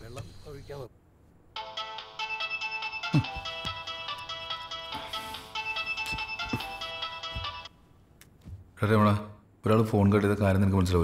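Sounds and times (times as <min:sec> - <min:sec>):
phone ringtone melody: 0:01.6 - 0:07.8.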